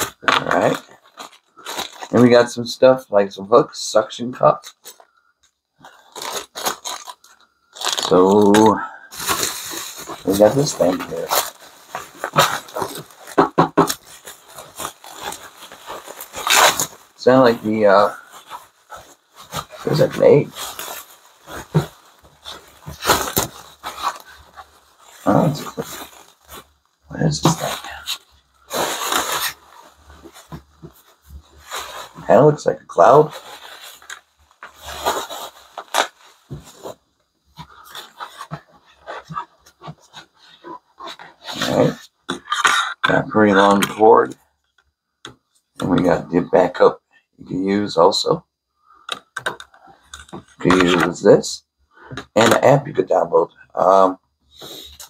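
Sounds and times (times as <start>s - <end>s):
bubble wrap crinkling: 0.0s - 2.6s, 5.8s - 43.0s
plastic scraping: 4.6s - 32.4s, 49.1s - 51.2s
hands rubbing plastic shell: 5.9s - 26.8s.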